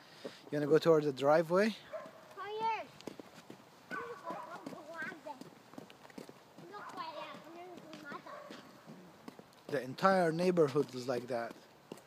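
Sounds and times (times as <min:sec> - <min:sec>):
clicking footsteps: 0:01.9 - 0:12.0
faint high-pitched voices talking: 0:03.9 - 0:05.5, 0:06.6 - 0:08.7.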